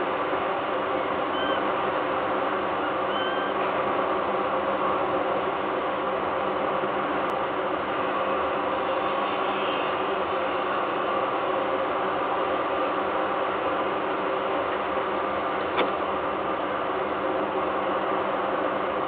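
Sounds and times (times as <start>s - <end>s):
industrial machinery hum: 0.0s - 19.0s.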